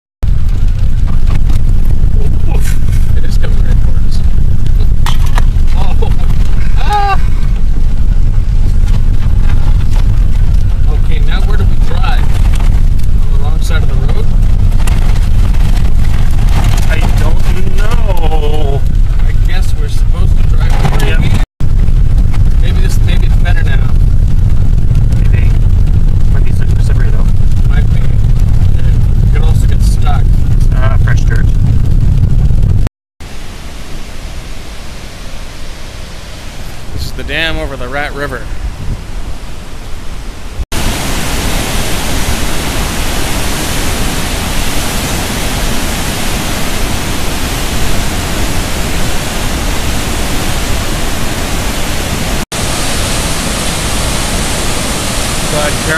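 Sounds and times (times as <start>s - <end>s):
car driving on gravel road: 0.2s - 32.9s, 40.8s - 55.9s
steady outdoor noise: 0.2s - 55.9s
people talking: 2.2s - 5.0s, 5.7s - 7.4s, 10.8s - 12.3s, 13.1s - 14.4s, 16.8s - 21.4s, 22.6s - 24.0s, 25.2s - 25.6s, 26.3s - 31.5s, 36.9s - 38.5s, 55.4s - 55.9s.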